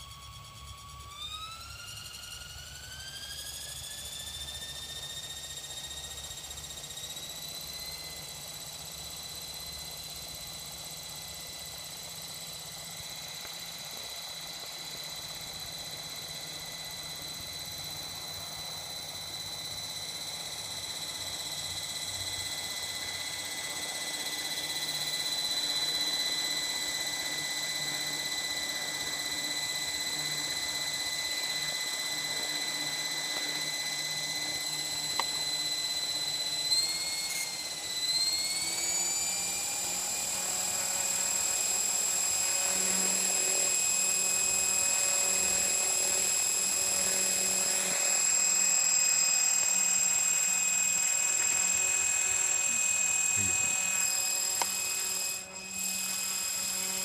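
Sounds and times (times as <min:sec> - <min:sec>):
rc helicopter motor whine: 0:00.0 - 0:57.0.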